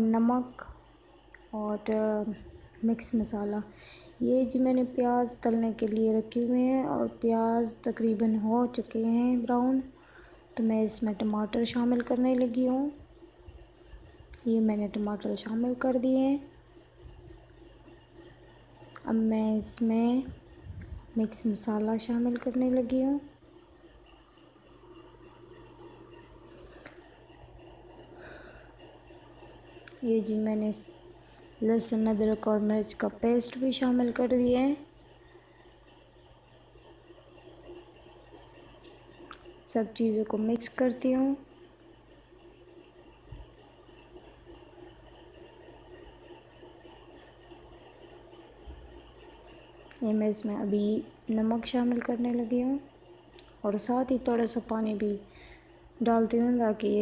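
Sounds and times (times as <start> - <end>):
faint background hum: 0.0 - 57.0.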